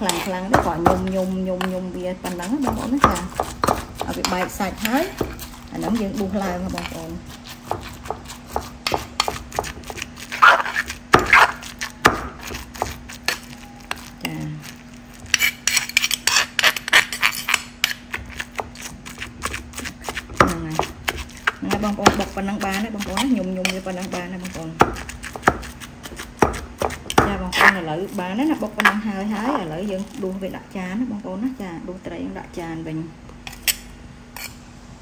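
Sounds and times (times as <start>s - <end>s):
metal spoon scraping bowl: 0.0s - 30.2s, 33.5s - 34.6s
pestle thudding in wooden mortar: 0.1s - 1.7s, 2.4s - 7.0s, 7.6s - 13.3s, 18.1s - 27.9s.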